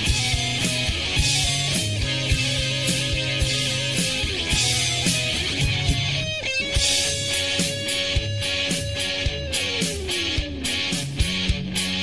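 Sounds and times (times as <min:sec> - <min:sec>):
bass guitar: 0:00.0 - 0:12.0
drum kit beat: 0:00.0 - 0:12.0
electric guitars: 0:00.0 - 0:12.0.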